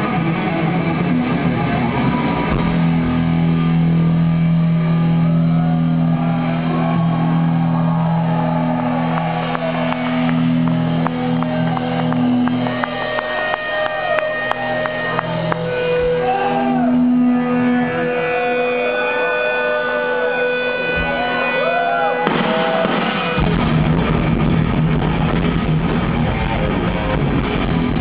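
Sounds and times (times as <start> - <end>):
live metal band playing: 0.0 - 28.0.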